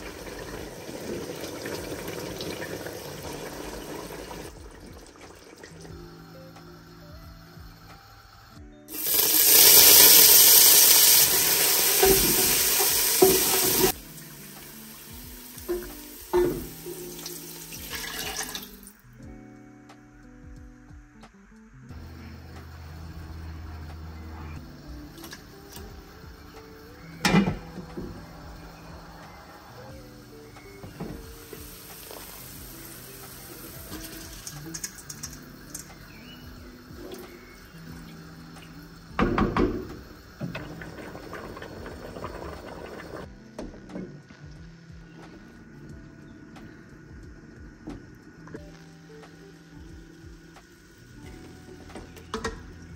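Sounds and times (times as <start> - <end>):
herbs sizzling in hot oil: 0.0 - 19.1, 21.9 - 43.5, 44.2 - 52.9
soft background music: 0.0 - 52.9
rice pouring into water: 8.9 - 18.9
splashing pour: 8.9 - 19.0, 31.3 - 36.0, 40.4 - 43.3.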